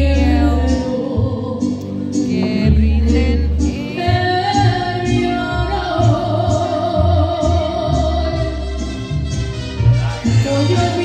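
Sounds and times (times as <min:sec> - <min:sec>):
woman singing a ballad: 0:00.0 - 0:08.7, 0:10.4 - 0:11.0
backing music with deep bass: 0:00.0 - 0:11.0.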